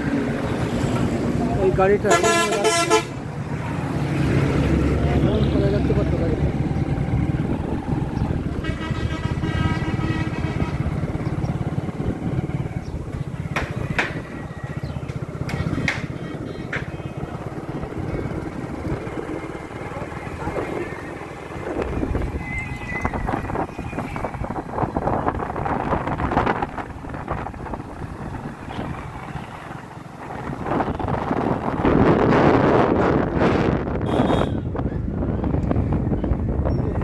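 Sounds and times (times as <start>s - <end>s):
engine and road rumble: 0.0s - 37.0s.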